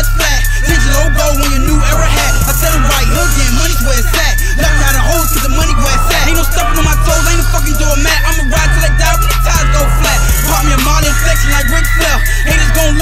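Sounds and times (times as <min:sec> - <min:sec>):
heavy bass beat: 0:00.0 - 0:13.0
high synth melody: 0:00.0 - 0:13.0
person rapping: 0:00.0 - 0:13.0.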